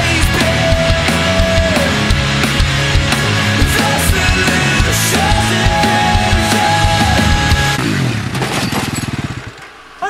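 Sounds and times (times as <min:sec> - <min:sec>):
quad bike engine revving down: 0:00.0 - 0:09.8.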